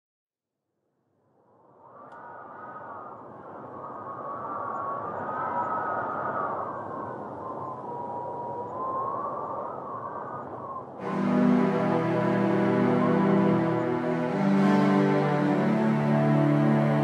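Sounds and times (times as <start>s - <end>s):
howling wind: 1.0s - 17.0s.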